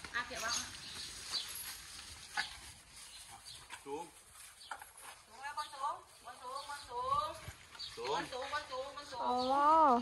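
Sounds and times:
elephant chewing crunches: 0.8 - 5.3.

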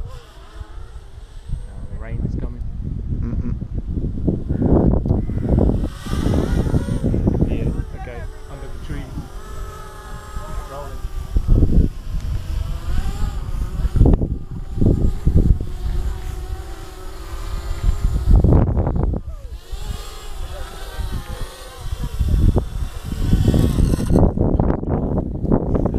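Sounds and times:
quadcopter propellers whining: 0.0 - 25.9
wind buffeting microphone: 0.0 - 25.9.

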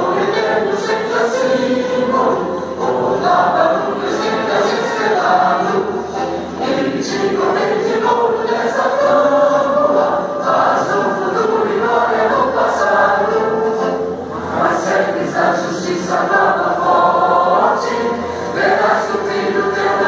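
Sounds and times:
choir singing an anthem: 0.0 - 20.0.

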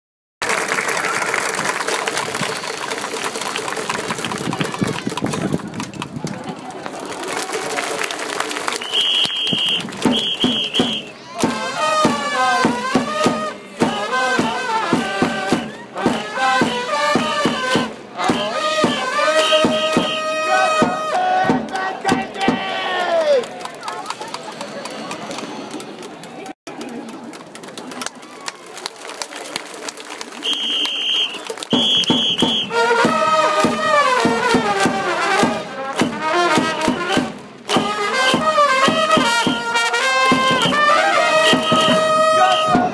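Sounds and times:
people clapping: 0.4 - 11.6, 20.8 - 35.1, 39.1 - 42.9
crowd noise: 0.4 - 42.9
whistle blasts: 8.8 - 11.2, 18.3 - 20.7, 30.4 - 32.8, 40.5 - 42.9
brass trumpets playing: 8.8 - 21.4, 30.4 - 42.9.

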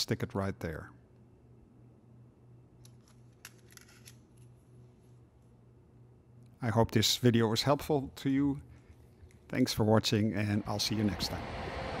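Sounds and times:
low hum: 8.6 - 12.0.

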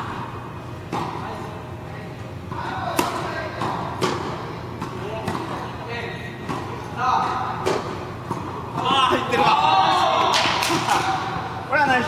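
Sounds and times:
tennis ball bouncing: 0.9 - 1.2, 2.5 - 5.7, 6.4 - 9.0
tennis ball hit by racket: 2.9 - 5.6.

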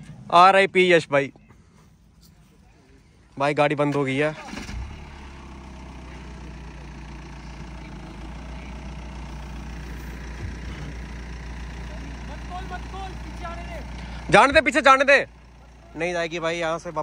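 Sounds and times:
car engine idling: 0.0 - 17.0.

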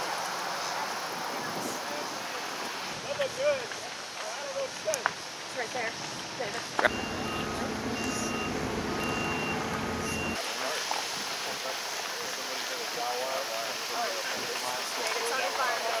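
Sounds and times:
diesel engine running: 6.9 - 10.4
two-tone backup alarm beeping: 6.9 - 10.4.

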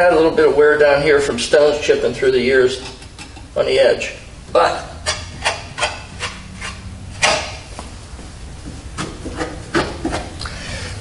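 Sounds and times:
hands rubbing car body: 5.1 - 10.4.

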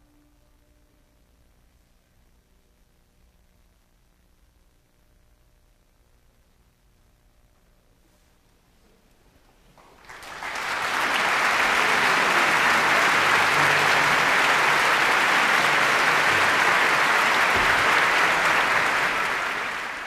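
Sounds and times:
audience applauding: 9.8 - 20.0.

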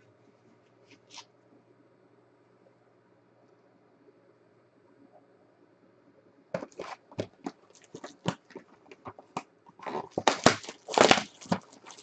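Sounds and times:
plastic wrapping crinkling: 6.6 - 12.0.

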